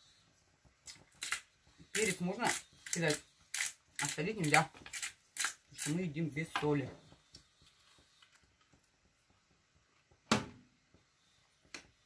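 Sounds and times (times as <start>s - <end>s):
pepper grinder crackle: 0.8s - 6.5s.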